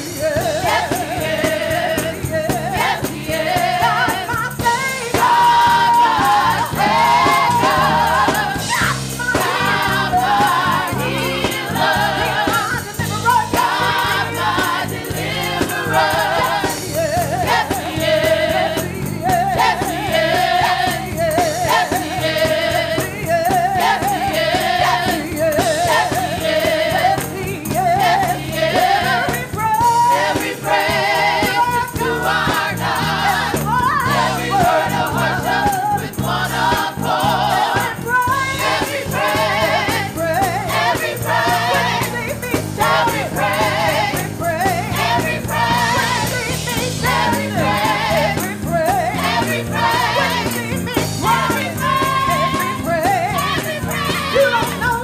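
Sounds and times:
gospel choir singing: 0.0 - 55.0.

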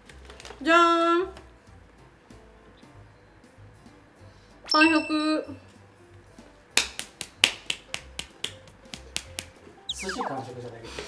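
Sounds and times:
person clapping lightly: 6.8 - 9.6.

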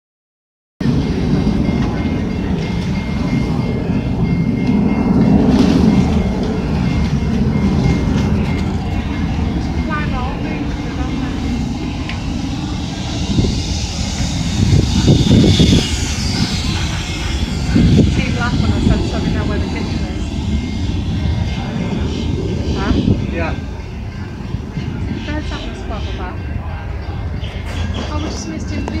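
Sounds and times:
low rumbling noise: 0.8 - 29.0.

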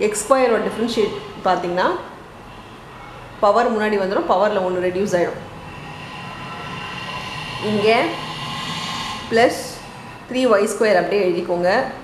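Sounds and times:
mechanical hum with high whines: 0.0 - 12.0
person speaking: 3.4 - 11.7.

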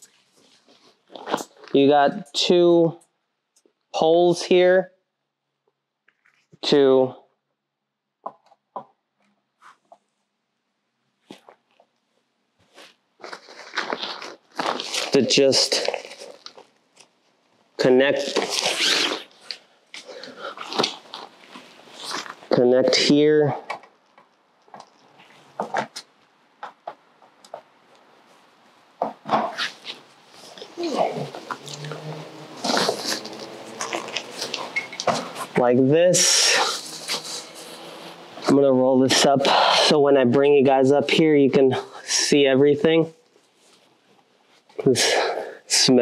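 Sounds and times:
tent fabric rustling: 12.6 - 17.4, 18.2 - 22.5, 29.4 - 35.6, 36.2 - 38.5
handling noise: 23.6 - 35.6.

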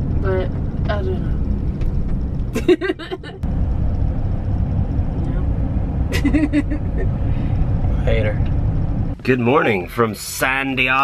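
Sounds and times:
road noise: 0.0 - 11.0
van engine rumble: 0.0 - 11.0
person laughing: 2.6 - 3.4, 6.1 - 7.1.

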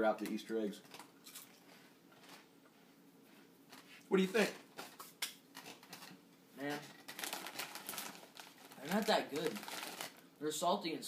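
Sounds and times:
foil snack bag crinkling: 5.6 - 10.3.

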